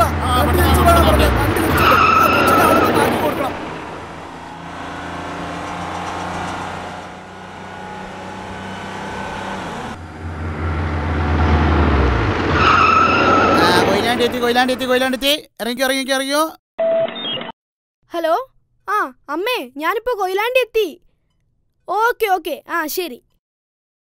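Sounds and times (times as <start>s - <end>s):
cartoon bus engine running: 0.0s - 15.4s.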